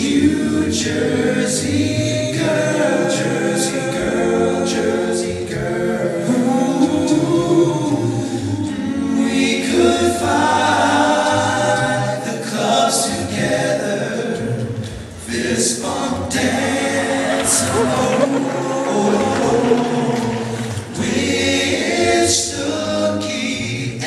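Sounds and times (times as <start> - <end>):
male a cappella group singing: 0.0 - 24.0.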